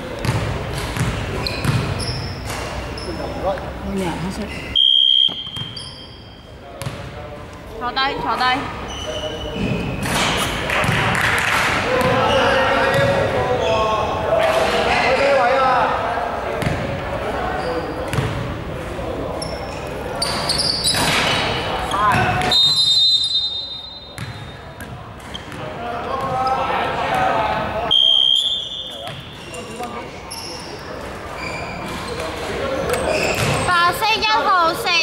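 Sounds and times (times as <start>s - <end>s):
players' voices: 0.0s - 22.6s, 23.4s - 35.0s
basketball bouncing on wooden floor: 0.2s - 1.9s.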